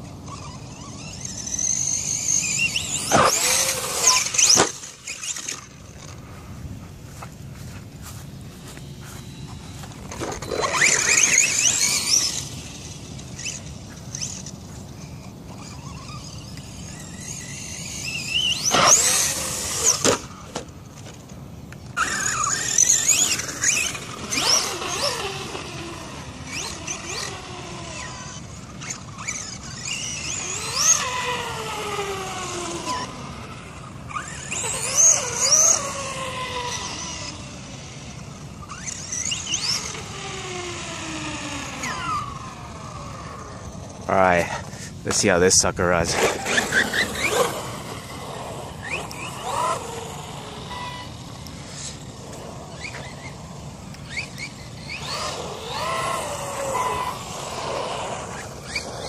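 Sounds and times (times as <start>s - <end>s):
electric motor whining: 0.0s - 59.0s.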